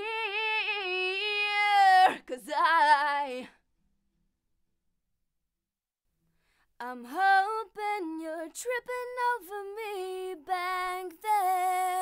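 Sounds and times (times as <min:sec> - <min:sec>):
woman singing: 0:00.0 - 0:03.6, 0:06.8 - 0:12.0.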